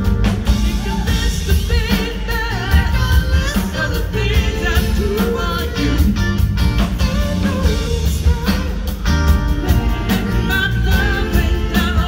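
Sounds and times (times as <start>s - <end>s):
live rock band playing: 0.0s - 12.0s
person singing lead vocal: 0.0s - 12.0s.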